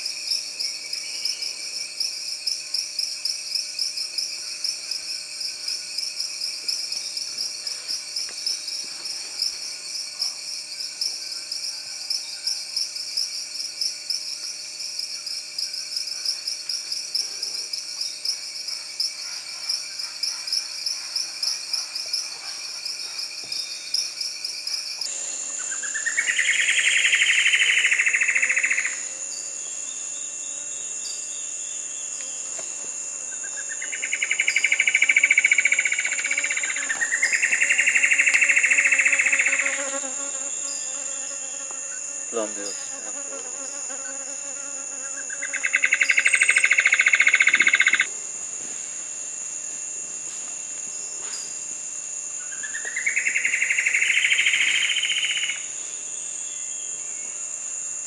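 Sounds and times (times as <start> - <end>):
high insect drone: 0.0 - 58.0.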